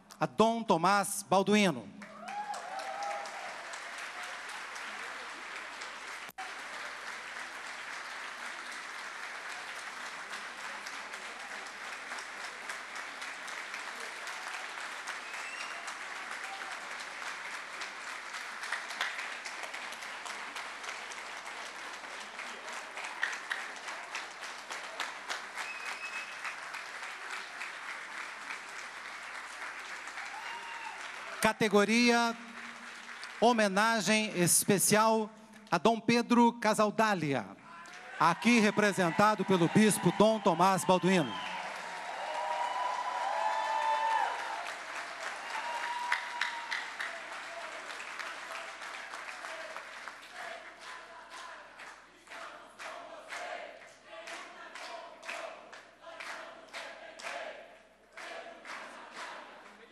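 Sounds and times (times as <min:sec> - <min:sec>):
audience applauding: 0:02.0 - 0:34.6, 0:37.8 - 0:57.5, 0:58.1 - 0:59.9.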